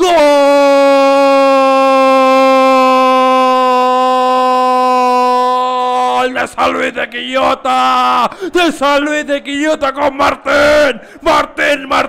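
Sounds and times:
man shouting long drawn-out call: 0:00.0 - 0:06.9.

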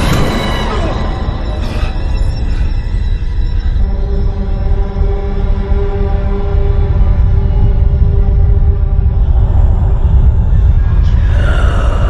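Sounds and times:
low rumble: 0:00.0 - 0:12.0
ominous film score music: 0:00.0 - 0:12.0.

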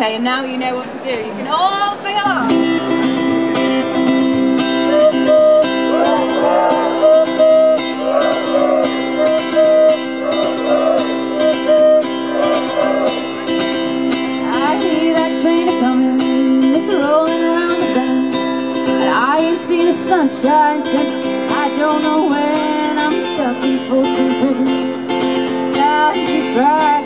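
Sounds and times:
acoustic guitar strumming: 0:02.4 - 0:27.0
crowd singing: 0:04.8 - 0:18.0
vocal whoops: 0:04.9 - 0:13.5
woman singing: 0:14.4 - 0:18.4, 0:19.0 - 0:24.9, 0:25.7 - 0:27.0.

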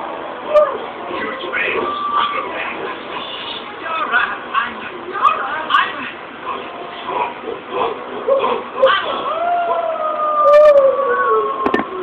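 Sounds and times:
wolf-style howl: 0:09.2 - 0:12.0.

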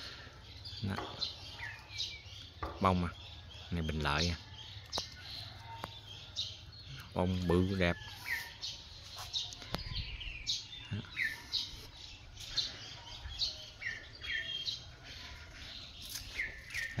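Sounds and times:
small birds chirping: 0:00.0 - 0:17.0.

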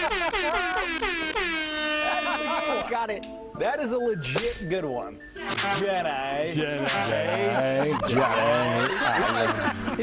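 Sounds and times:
brassy horn blasts gliding in pitch: 0:00.0 - 0:02.9.

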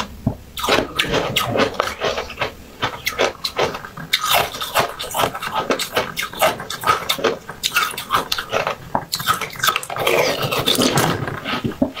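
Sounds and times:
wet mouth noises: 0:00.0 - 0:12.0.

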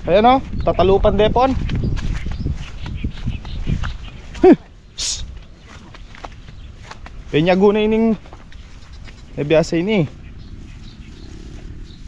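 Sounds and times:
footsteps in grass: 0:00.0 - 0:12.0.

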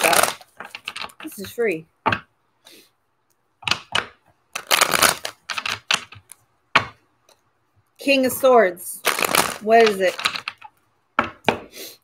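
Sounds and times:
cards being shuffled: 0:03.7 - 0:06.4, 0:09.0 - 0:10.7.

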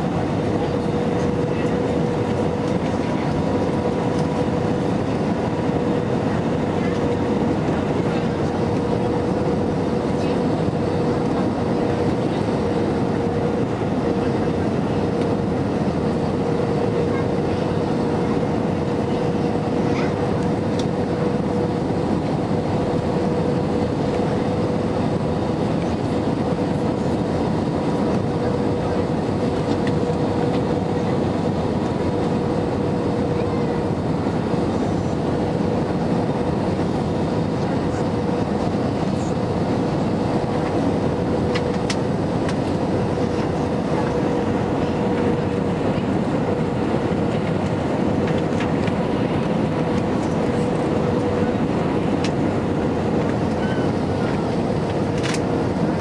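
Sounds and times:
jet engines humming: 0:00.0 - 0:56.0.

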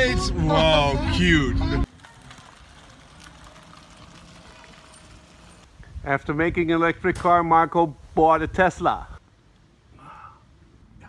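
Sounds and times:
tyres hissing on damp paving: 0:01.8 - 0:05.7.

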